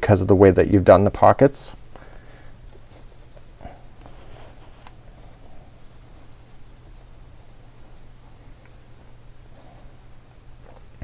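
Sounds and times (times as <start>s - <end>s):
low room hum: 0.0s - 11.0s
hands rustling fabric: 1.8s - 11.0s.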